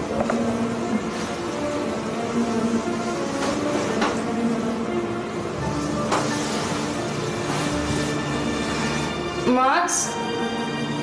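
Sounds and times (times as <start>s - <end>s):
droning synth chord: 0.0s - 11.0s.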